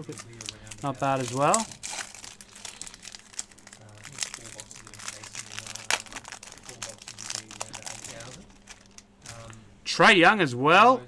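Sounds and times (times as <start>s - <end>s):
cellophane wrapper crinkling: 0.0s - 9.6s.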